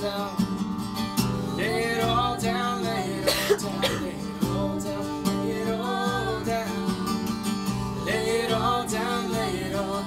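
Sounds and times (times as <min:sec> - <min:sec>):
acoustic guitar strumming: 0:00.0 - 0:10.0
muffled cough: 0:03.2 - 0:04.2.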